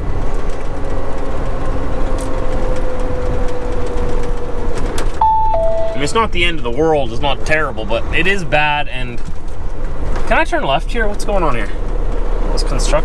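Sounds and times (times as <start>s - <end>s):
diesel engine drone: 0.0s - 13.0s
road rumble: 0.0s - 13.0s
electronic two-note chime: 5.2s - 6.1s.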